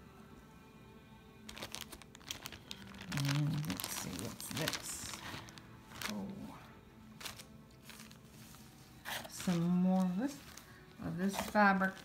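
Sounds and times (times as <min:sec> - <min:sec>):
plastic bags crinkling: 0:01.5 - 0:06.6, 0:07.2 - 0:12.0.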